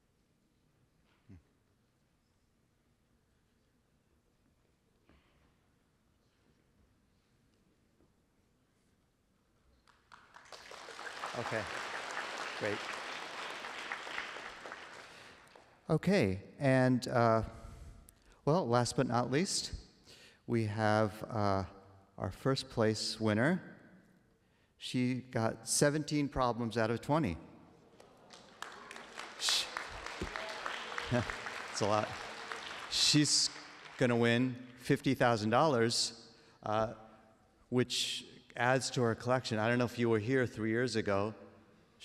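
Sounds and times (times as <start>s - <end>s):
audience clapping: 9.8s - 15.8s, 27.9s - 34.8s.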